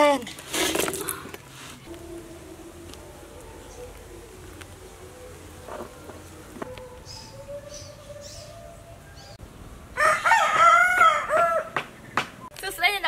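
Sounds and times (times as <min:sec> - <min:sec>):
rooster crowing: 0:10.0 - 0:11.8.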